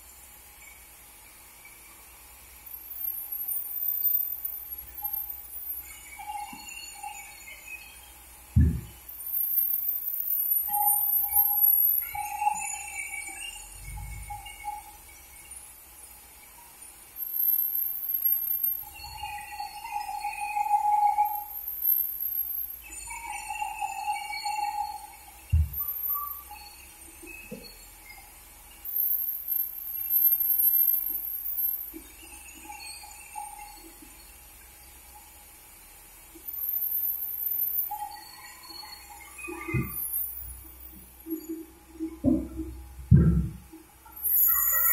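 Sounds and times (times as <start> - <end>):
low steady hum: 0.0 - 9.4, 10.8 - 17.2
single thump: 8.6 - 9.0, 43.1 - 43.6
band saw blade squealing: 44.2 - 44.9.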